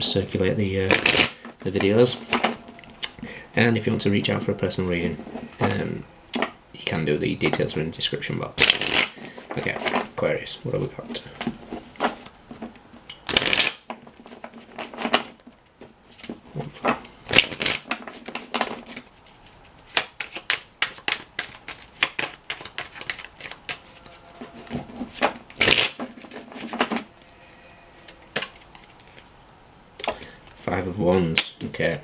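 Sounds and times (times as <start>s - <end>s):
cards being shuffled: 0.9s - 1.5s, 8.6s - 10.0s, 11.4s - 15.3s, 16.1s - 24.1s.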